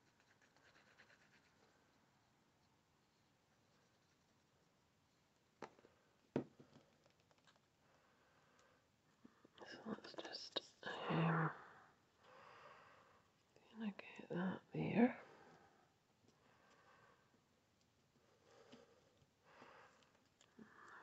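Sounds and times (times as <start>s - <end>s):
woman whispering: 9.6s - 11.9s, 13.6s - 15.6s.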